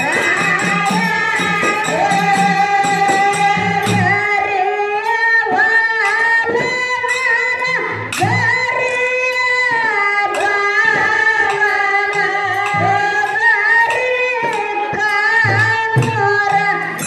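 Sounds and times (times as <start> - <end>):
instrumental accompaniment: 0.0 - 17.0
woman singing into a microphone: 0.0 - 17.0.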